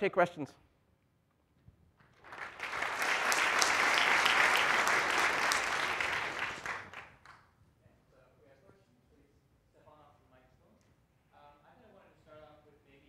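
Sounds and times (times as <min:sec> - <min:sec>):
audience applauding: 0:02.1 - 0:07.4.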